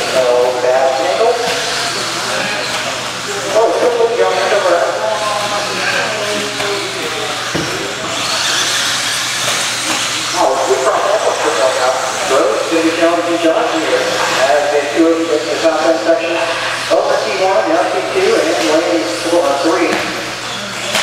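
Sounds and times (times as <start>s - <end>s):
electric toy cars whirring: 0.0s - 21.0s
people's voices: 0.0s - 21.0s.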